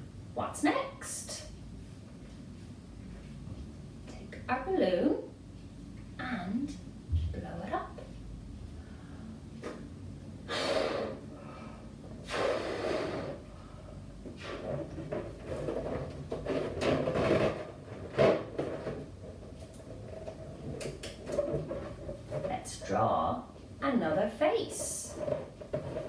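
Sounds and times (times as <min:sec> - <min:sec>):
puffs of breath into balloon: 0:10.4 - 0:14.6.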